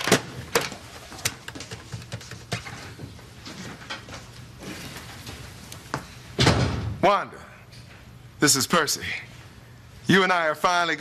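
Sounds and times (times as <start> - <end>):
door thudding shut: 6.4 - 7.0.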